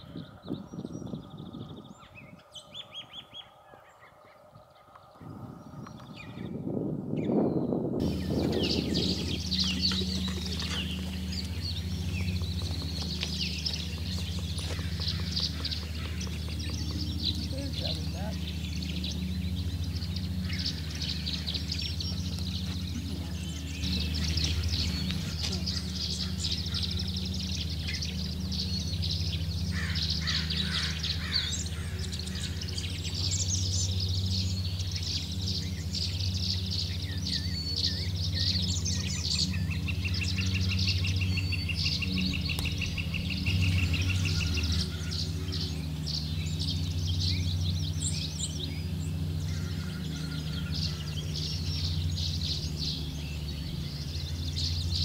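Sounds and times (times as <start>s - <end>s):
songbirds chirping and singing: 0.0s - 55.0s
steady low hum: 0.0s - 55.0s
rapid bird trill: 8.0s - 55.0s.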